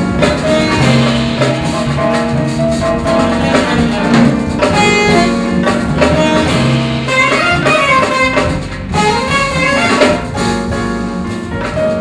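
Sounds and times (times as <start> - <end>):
low bass line: 0.0 - 12.0
piano: 0.0 - 12.0
saxophone melody: 0.2 - 10.8.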